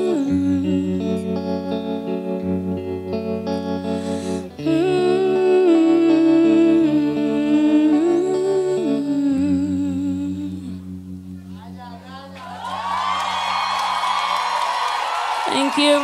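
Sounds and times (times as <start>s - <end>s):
woman's wordless singing: 0.0s - 1.6s, 4.6s - 10.8s
sustained backing chords: 0.0s - 12.8s.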